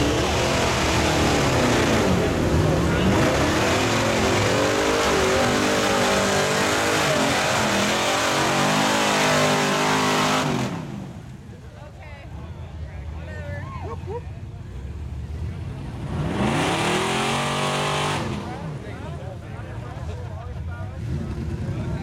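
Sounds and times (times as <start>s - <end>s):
truck engine revving: 0.0s - 11.3s, 15.1s - 20.0s, 20.8s - 22.0s
truck churning through mud: 0.0s - 11.5s, 14.8s - 19.7s, 20.9s - 22.0s.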